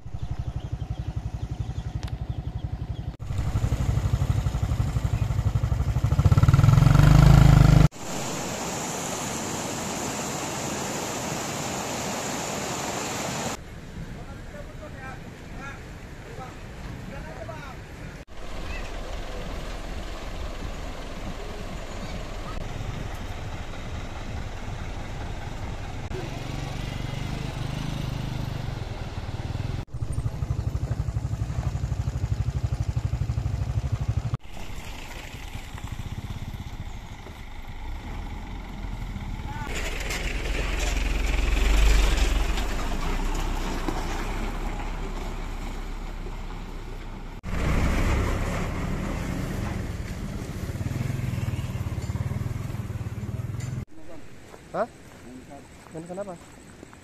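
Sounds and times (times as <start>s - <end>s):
trucks and motorcycles passing: 0.0s - 56.4s.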